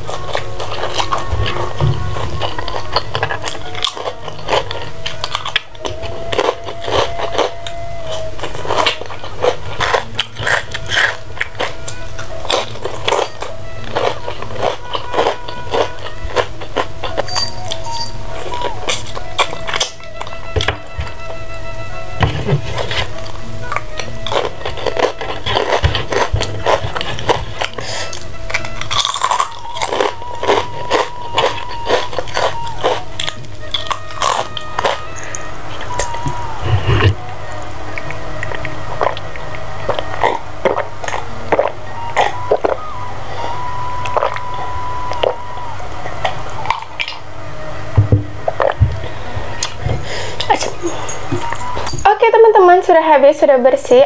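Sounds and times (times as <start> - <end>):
crunchy bites and chewing: 0.0 - 21.4, 22.5 - 37.3
background music: 0.0 - 54.0.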